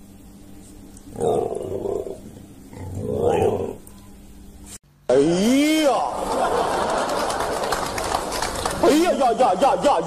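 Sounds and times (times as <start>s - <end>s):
animal calling roughly: 1.2s - 3.9s.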